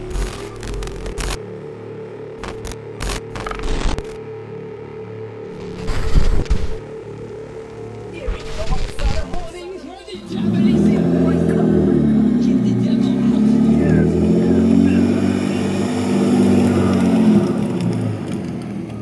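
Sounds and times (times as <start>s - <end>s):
car engine revving: 10.2s - 19.0s.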